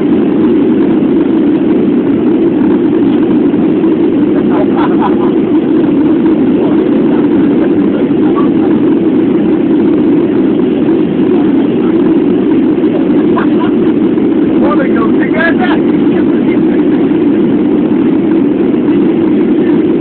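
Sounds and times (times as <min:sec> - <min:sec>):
airliner cabin engine drone: 0:00.0 - 0:20.0.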